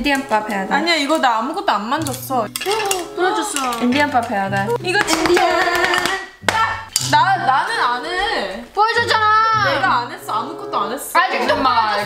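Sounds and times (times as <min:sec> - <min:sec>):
young women chanting and talking: 0:00.1 - 0:12.0
candy pieces clinking on a plate: 0:02.1 - 0:04.0.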